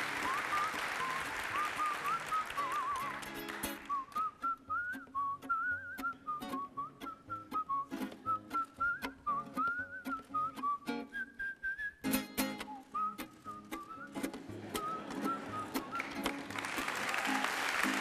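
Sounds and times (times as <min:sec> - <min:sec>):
man whistling melody: 0:00.0 - 0:16.5
lute plucking: 0:00.2 - 0:16.6.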